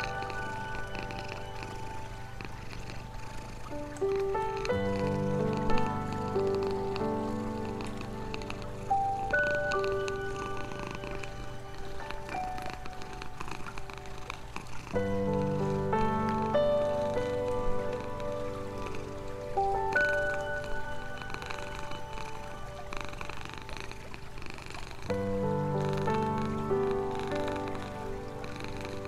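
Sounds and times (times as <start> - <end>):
cat purring: 0.0 - 29.0
slow calm music: 0.0 - 29.0.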